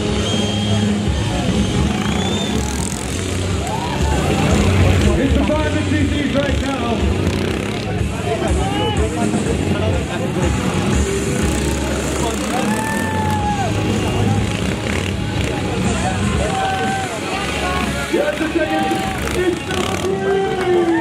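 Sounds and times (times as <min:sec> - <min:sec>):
crowd voices: 0:00.0 - 0:21.0
motorcycles running: 0:00.0 - 0:21.0.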